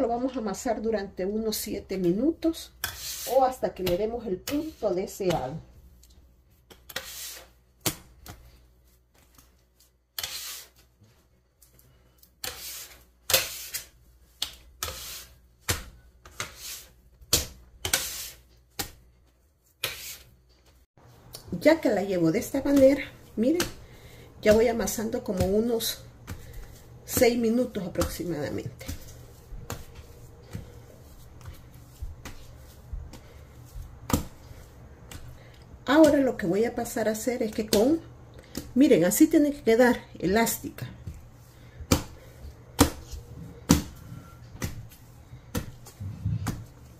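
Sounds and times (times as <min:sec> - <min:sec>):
wet dough slapping on counter: 0:01.8 - 0:09.4, 0:12.4 - 0:19.1, 0:21.3 - 0:39.2, 0:39.9 - 0:44.0, 0:44.6 - 0:46.9.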